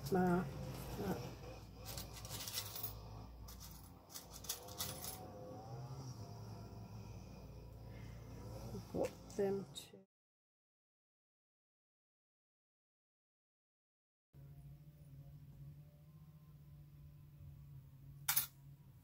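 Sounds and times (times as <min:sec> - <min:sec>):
low hum: 0:00.0 - 0:10.0, 0:14.4 - 0:19.0.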